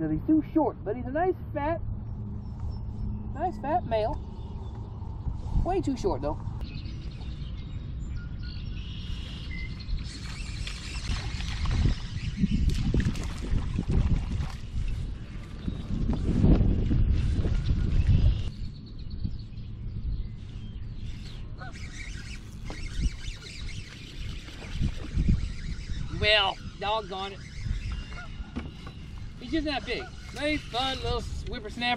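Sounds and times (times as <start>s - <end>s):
wind rumbling on microphone: 0.0s - 31.9s
faint bird calls: 20.4s - 31.4s.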